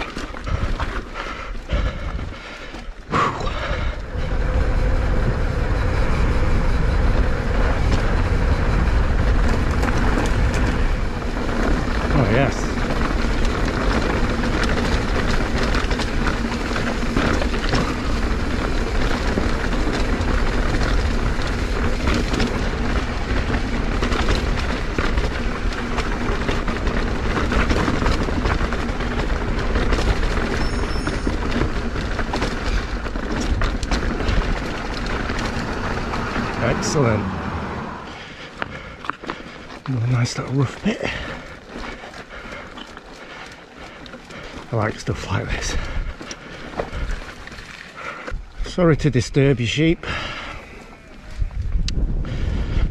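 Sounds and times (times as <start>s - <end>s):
bike rattles and knocks: 0.0s - 37.2s, 38.1s - 52.9s
bike tyres rumbling on rock: 0.0s - 52.9s
wind buffeting microphone: 0.0s - 52.9s.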